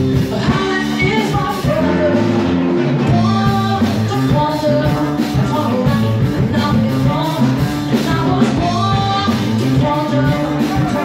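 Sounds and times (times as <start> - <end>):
bass guitar: 0.0 - 11.0
drum kit: 0.0 - 11.0
electric guitar: 0.0 - 11.0
woman singing: 0.1 - 11.0.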